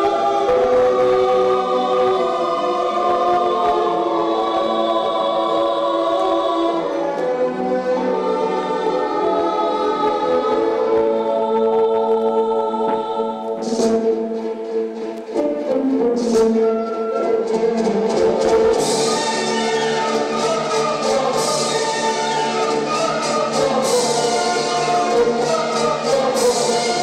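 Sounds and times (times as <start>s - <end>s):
choir singing sustained chords: 0.0s - 15.1s, 16.9s - 27.0s.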